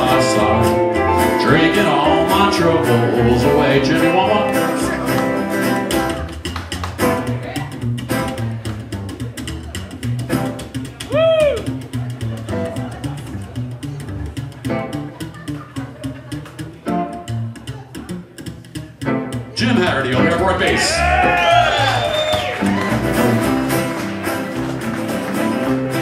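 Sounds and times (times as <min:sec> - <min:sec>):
strummed acoustic guitar: 0:00.0 - 0:11.1, 0:11.7 - 0:21.4, 0:22.6 - 0:26.0
electric guitar: 0:00.0 - 0:26.0
slapped upright bass: 0:00.0 - 0:26.0.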